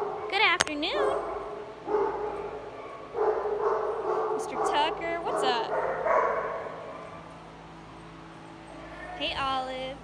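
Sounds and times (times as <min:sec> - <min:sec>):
dog barking: 0:01.0 - 0:07.2.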